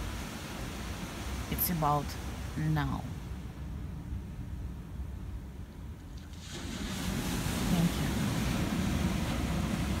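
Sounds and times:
surf: 0.0s - 4.9s, 6.0s - 10.0s
wind: 0.0s - 10.0s.

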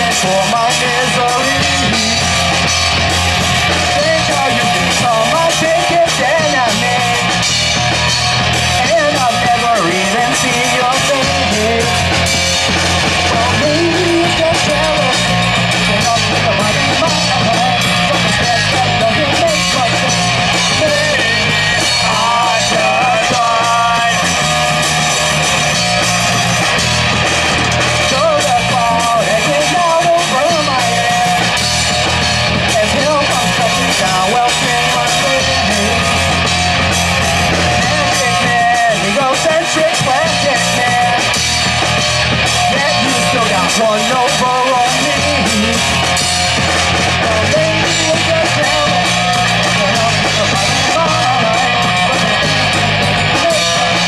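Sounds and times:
drum kit: 0.0s - 54.0s
electric bass: 0.0s - 54.0s
electric guitar: 0.0s - 54.0s.

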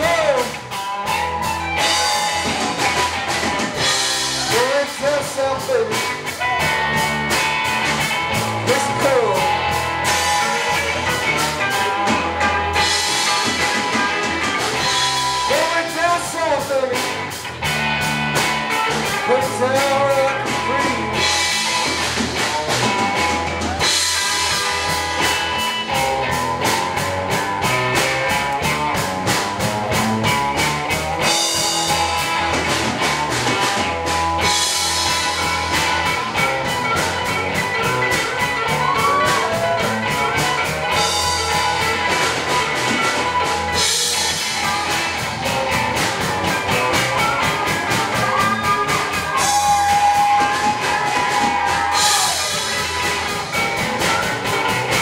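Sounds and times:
drums: 0.0s - 55.0s
electric guitars: 0.0s - 55.0s.

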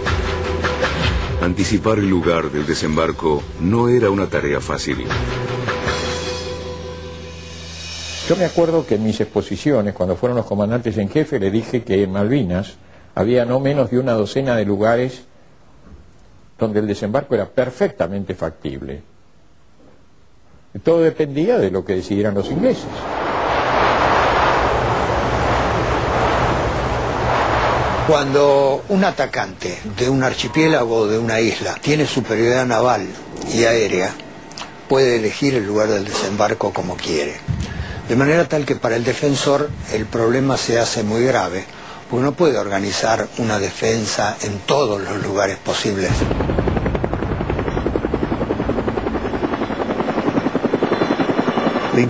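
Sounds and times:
faint low hum: 9.8s - 52.0s
wind: 22.7s - 28.9s, 46.2s - 52.0s
helicopter rotor blades chopping: 45.8s - 52.0s.

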